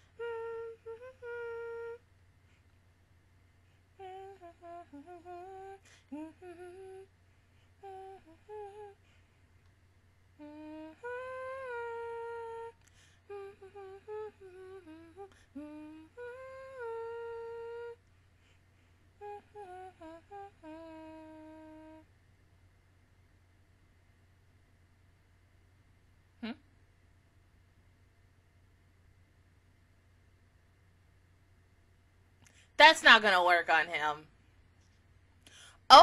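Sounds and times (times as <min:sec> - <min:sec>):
woman humming: 0:00.0 - 0:02.0, 0:04.0 - 0:07.1, 0:07.8 - 0:09.0, 0:10.4 - 0:18.1, 0:19.2 - 0:22.1, 0:26.4 - 0:26.7.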